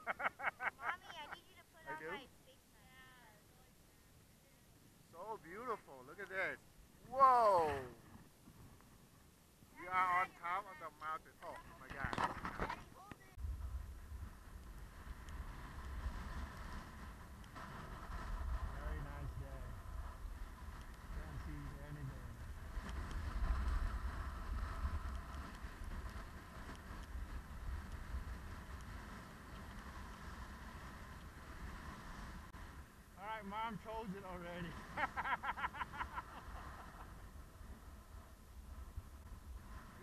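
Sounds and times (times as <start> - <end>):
skis sliding on snow: 5.2 - 40.0
wind rumbling on microphone: 11.5 - 40.0.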